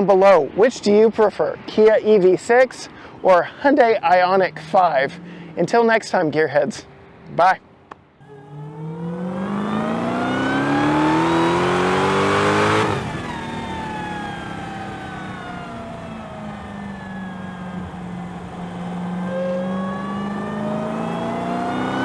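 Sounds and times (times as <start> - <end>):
race car accelerating and slowing: 3.8 - 6.1, 8.2 - 22.0.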